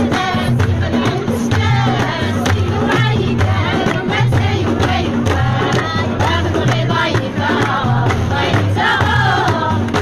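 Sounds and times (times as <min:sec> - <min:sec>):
frame drums: 0:00.0 - 0:10.0
hand clapping: 0:00.0 - 0:10.0
women singing in chorus: 0:00.0 - 0:10.0.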